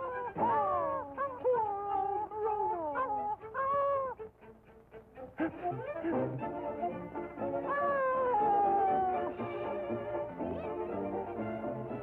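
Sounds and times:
cartoon dog howling: 0:00.0 - 0:04.2, 0:07.6 - 0:11.1
orchestral music: 0:00.0 - 0:12.0.

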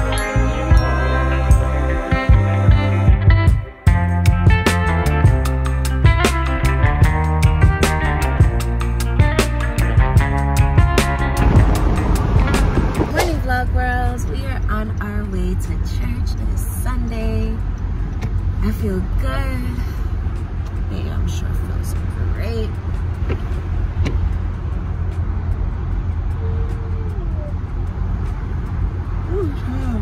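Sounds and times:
car cabin rumble: 0:10.2 - 0:30.0
woman talking: 0:13.1 - 0:17.6, 0:18.6 - 0:20.0, 0:20.9 - 0:22.8, 0:29.3 - 0:30.0.

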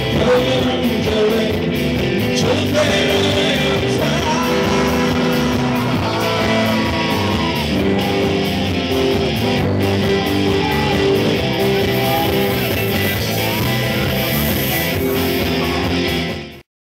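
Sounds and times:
instrumental rock band: 0:00.0 - 0:16.6.

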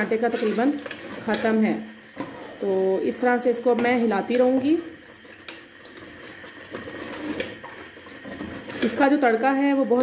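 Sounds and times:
spoon scraping thick puree in pot: 0:00.0 - 0:02.6, 0:03.6 - 0:09.4.

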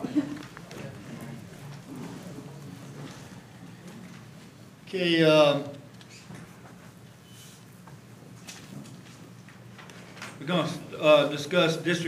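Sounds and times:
people moving about: 0:00.0 - 0:04.7, 0:05.7 - 0:10.7
room noise: 0:00.0 - 0:12.0.

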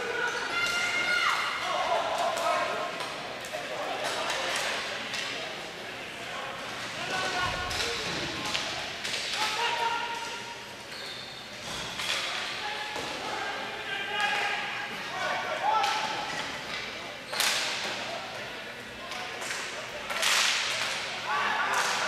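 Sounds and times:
players and spectators voices: 0:00.0 - 0:22.0.

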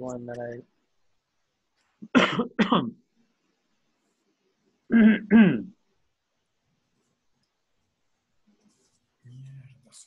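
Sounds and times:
person coughing loudly: 0:02.0 - 0:02.9, 0:04.9 - 0:05.8.

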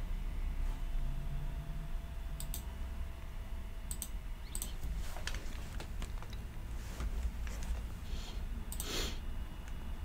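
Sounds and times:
low hum: 0:00.0 - 0:10.0
computer control clicks: 0:02.4 - 0:02.7, 0:03.9 - 0:04.8.

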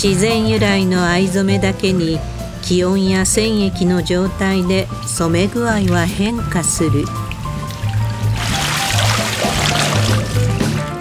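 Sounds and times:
background music with bass line: 0:00.0 - 0:11.0
dye liquid splashing and trickling: 0:04.6 - 0:11.0.

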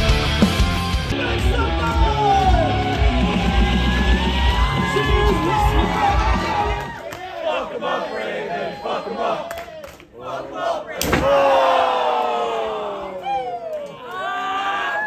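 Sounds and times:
crowd shouting: 0:01.2 - 0:13.5.

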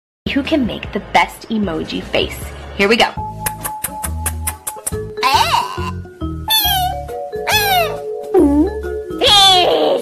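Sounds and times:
music with steady bass beat: 0:03.2 - 0:09.2
cat meowing: 0:06.5 - 0:08.0.

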